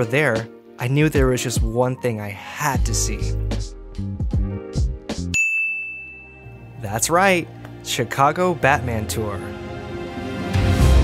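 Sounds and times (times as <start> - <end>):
high bell-like ding: 5.3 - 6.8.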